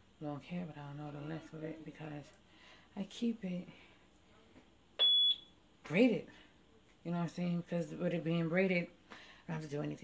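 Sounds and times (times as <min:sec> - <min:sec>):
high-pitched electronic beep: 0:05.0 - 0:05.5.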